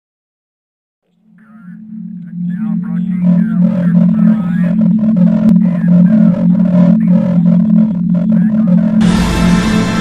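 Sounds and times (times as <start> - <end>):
low synth drone: 1.2 - 10.0
warbling voice-like sample: 1.6 - 9.0
electronic music with deep bass: 2.1 - 10.0.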